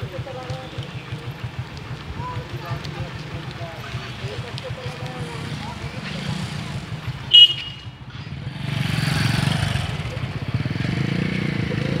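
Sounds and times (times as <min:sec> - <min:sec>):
vehicle engine throbbing: 0:00.0 - 0:12.0.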